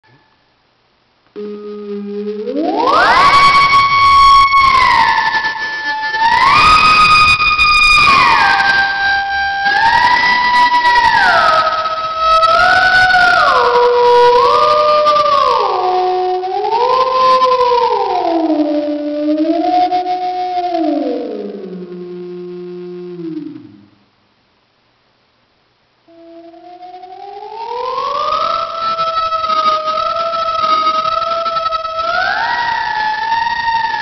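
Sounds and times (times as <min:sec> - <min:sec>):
theremin-like synth melody: 0:01.4 - 0:23.8, 0:26.1 - 0:34.0.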